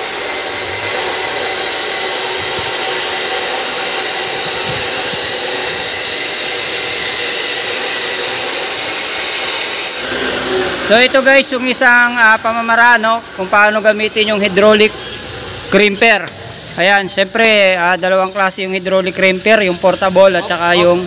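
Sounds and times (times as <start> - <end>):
workshop machinery rushing: 0.0 - 21.0.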